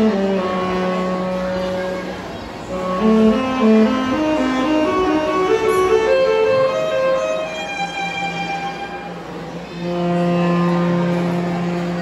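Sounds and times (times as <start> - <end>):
alto saxophone sustained note: 0.0 - 12.0
wind band: 0.0 - 12.0.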